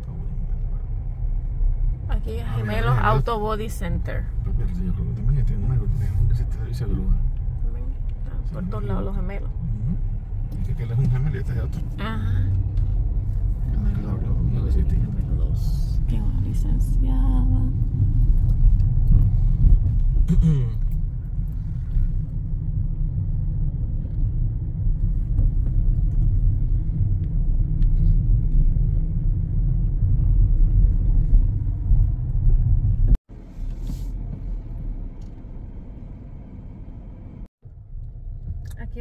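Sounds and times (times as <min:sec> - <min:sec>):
car interior rumble: 0:00.0 - 0:39.0.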